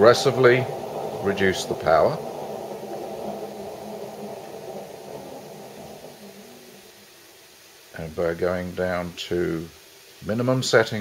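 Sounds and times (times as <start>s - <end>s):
stove fan and flame rushing: 0.0s - 11.0s.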